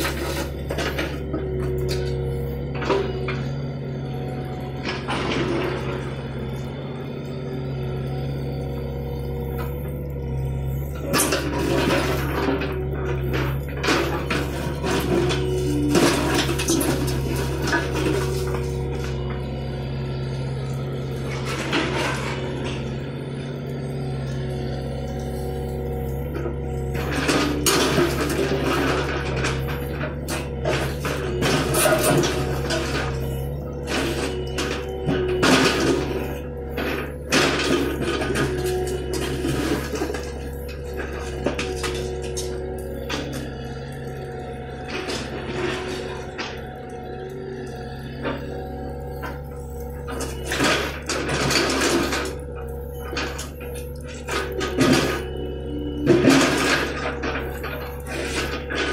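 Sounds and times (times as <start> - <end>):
diesel engine running under load: 0.0 - 58.9
concrete chunks clattering: 9.4 - 19.5, 24.6 - 58.9.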